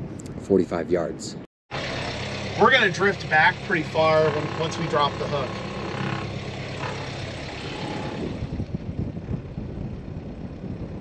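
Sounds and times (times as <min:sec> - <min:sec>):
low steady rumble: 0:01.7 - 0:11.0
wind buffeting microphone: 0:05.6 - 0:11.0.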